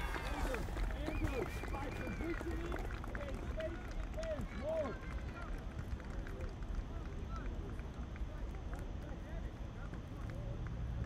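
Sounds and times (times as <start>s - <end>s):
distant shouts of players: 0.0s - 2.9s
low rumble of outdoor ambience: 0.0s - 11.0s.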